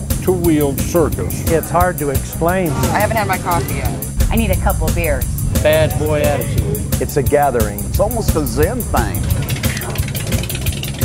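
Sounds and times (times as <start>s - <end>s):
background music: 0.0s - 11.0s
motorcycle engine running: 4.0s - 11.0s.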